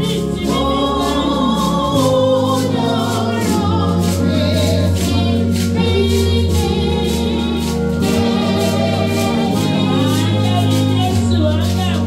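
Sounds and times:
congregation singing a hymn: 0:00.0 - 0:12.0
instrumental accompaniment with beat: 0:00.0 - 0:12.0.

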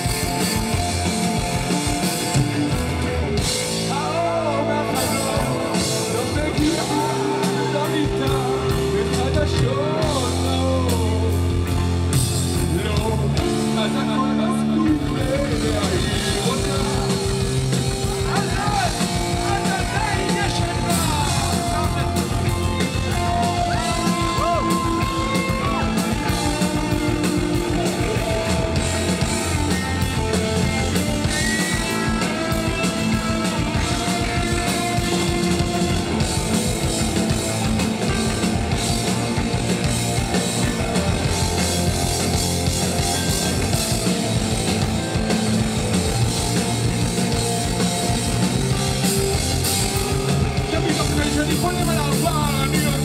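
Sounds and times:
drum kit: 0:00.0 - 0:53.0
electric guitar: 0:00.0 - 0:53.0.

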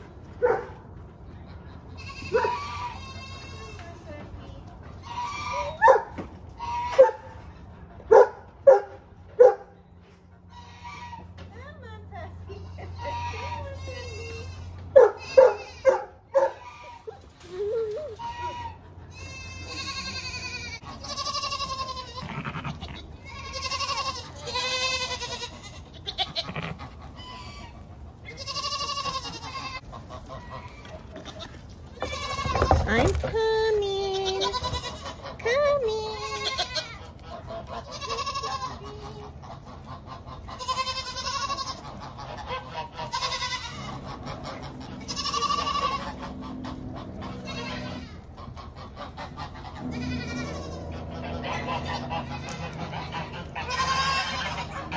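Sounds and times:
goats bleating: 0:01.8 - 0:04.3, 0:06.5 - 0:07.1, 0:10.5 - 0:11.4, 0:12.5 - 0:16.0, 0:16.6 - 0:17.3, 0:18.1 - 0:54.9.

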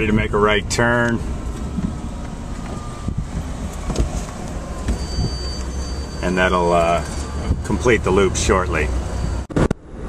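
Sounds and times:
road and wind rumble: 0:00.0 - 0:10.0.

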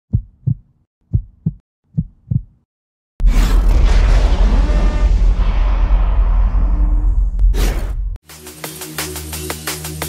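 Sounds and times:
heartbeat thumps: 0:00.1 - 0:02.7.

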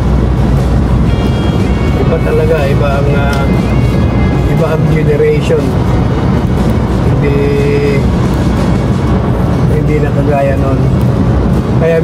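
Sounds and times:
car engine rumble and road noise: 0:00.0 - 0:12.0.

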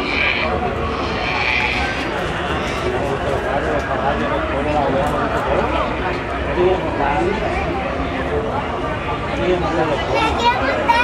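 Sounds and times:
high animal calls: 0:00.0 - 0:03.0
crowd chatter: 0:00.0 - 0:11.0.

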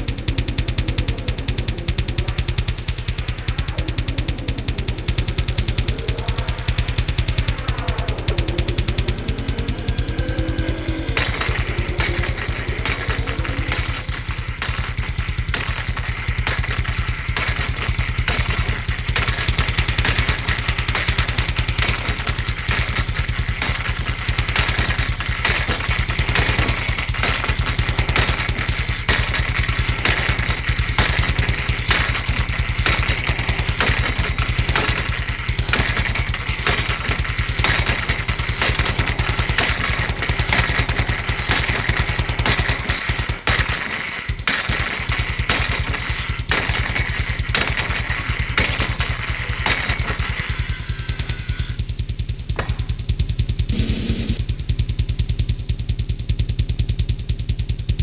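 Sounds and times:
rasping metallic noise: 0:00.0 - 0:51.9
pulsing drum machine and bass drone: 0:00.0 - 0:58.0.

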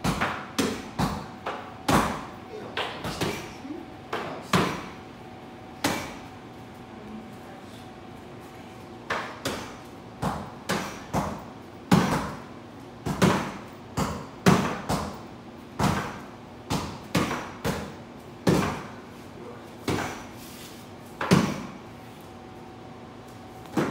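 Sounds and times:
punches thudding on pads: 0:00.0 - 0:02.3, 0:04.4 - 0:05.0, 0:05.8 - 0:06.2, 0:09.1 - 0:15.2, 0:15.8 - 0:19.0, 0:19.8 - 0:20.3, 0:21.2 - 0:21.8, 0:23.7 - 0:23.9.

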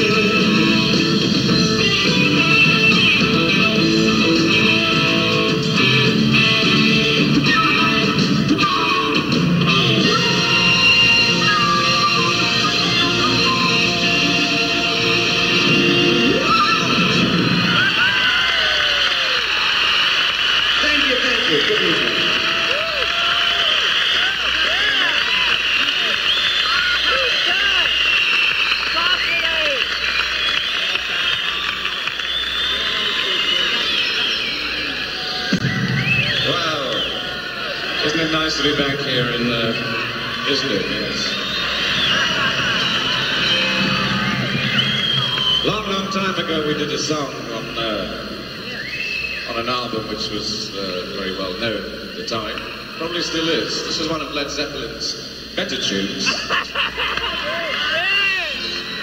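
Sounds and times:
live rock band playing: 0:00.0 - 0:18.1
electric guitar: 0:00.0 - 0:19.7
crowd cheering and whistling: 0:00.0 - 0:59.0
crowd applauding: 0:10.4 - 0:50.2, 0:55.7 - 0:59.0.

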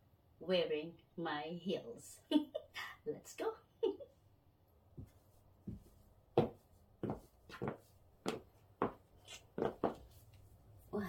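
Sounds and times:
footsteps on wooden floor: 0:05.0 - 0:10.2.

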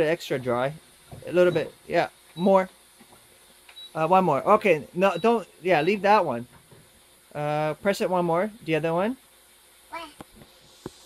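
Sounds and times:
young child's voice: 0:09.9 - 0:10.2.

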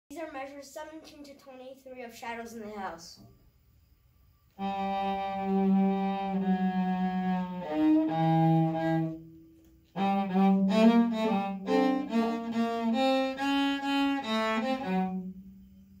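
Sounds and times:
solo cello bowed: 0:04.6 - 0:16.0.

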